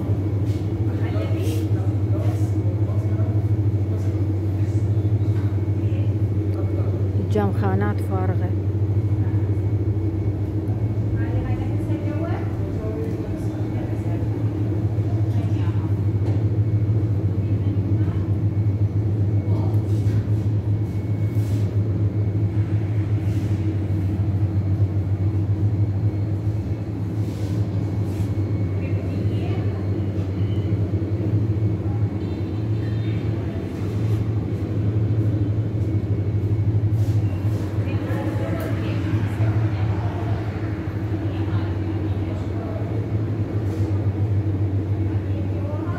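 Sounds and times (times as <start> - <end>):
low machine hum: 0.0 - 45.9.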